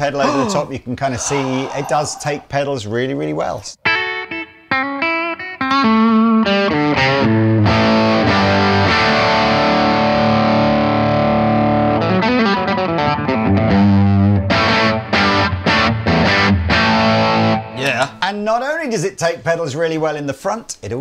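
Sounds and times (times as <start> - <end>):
distorted electric guitar chords: 4.0 - 17.8.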